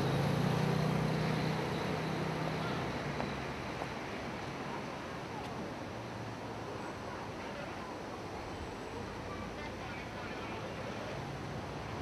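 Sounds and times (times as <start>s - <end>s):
street traffic hiss: 0.0s - 12.0s.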